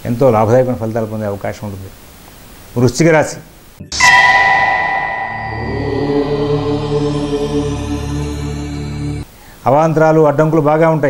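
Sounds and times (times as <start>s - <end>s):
bell-like chime: 3.9s - 8.4s.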